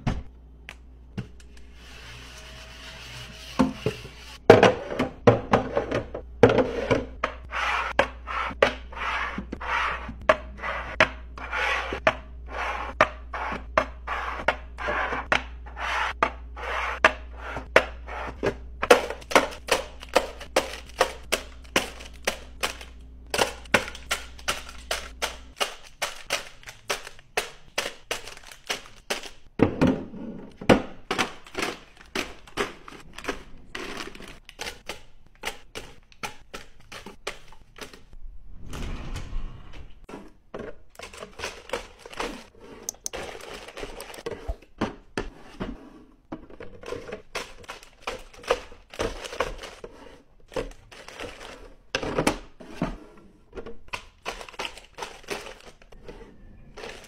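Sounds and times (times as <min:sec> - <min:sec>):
items tapping and knocking: 0:03.6 - 0:09.6, 0:16.2 - 0:38.2, 0:40.4 - 0:56.0.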